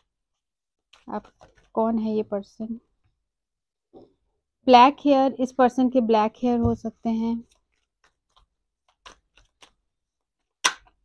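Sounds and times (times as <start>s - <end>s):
cards being shuffled: 0.0s - 1.8s, 7.4s - 11.0s.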